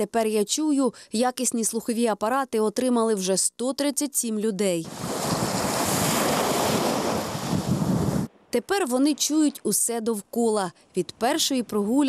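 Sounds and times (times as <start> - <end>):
waves breaking on sandy shore: 4.8 - 8.3.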